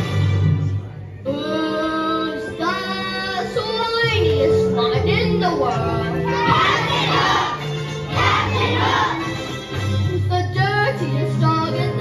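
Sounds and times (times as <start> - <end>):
instrumental accompaniment: 0.0 - 12.0
children singing: 5.7 - 9.3.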